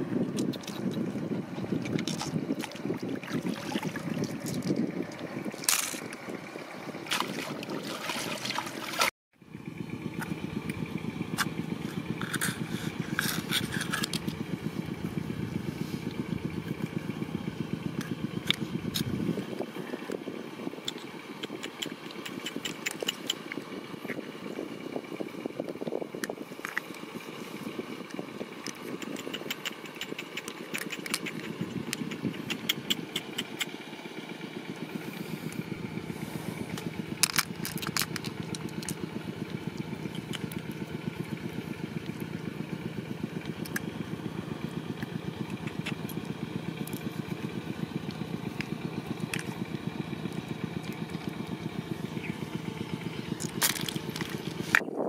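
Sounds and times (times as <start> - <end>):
low pulsing motor rumble: 0.0 - 55.0.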